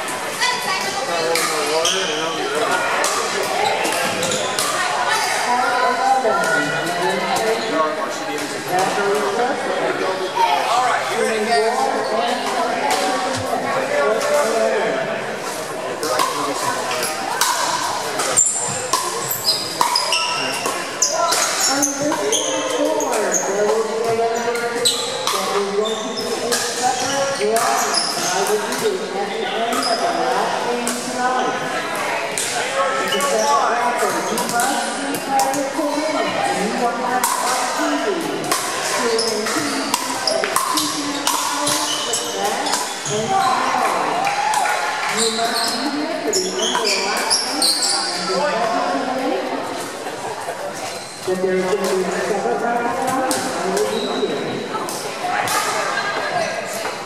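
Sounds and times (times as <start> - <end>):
chatter of players: 0.0 - 57.0
paddles striking balls: 37.1 - 44.8.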